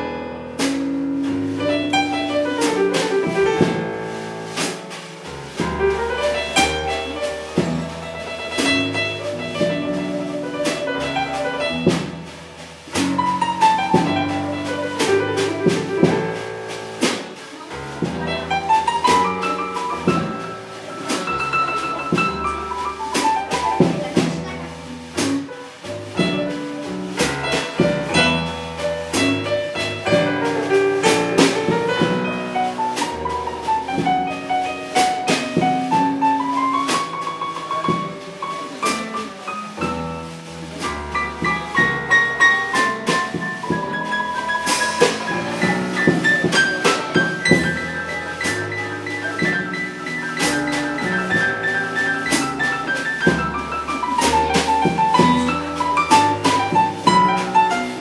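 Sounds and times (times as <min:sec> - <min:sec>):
steady drum beat: 0:00.5 - 0:58.0.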